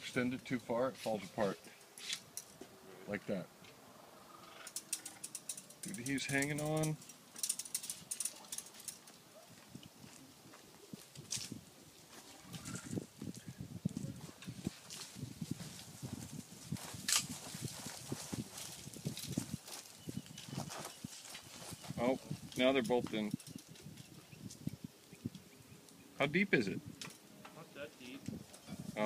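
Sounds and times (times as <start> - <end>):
footsteps crunching on dirt: 9.0 - 22.4.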